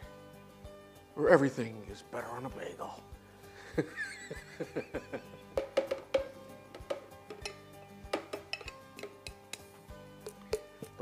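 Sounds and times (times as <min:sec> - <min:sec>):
light background music: 0:00.0 - 0:11.0
man laughing: 0:03.6 - 0:05.4.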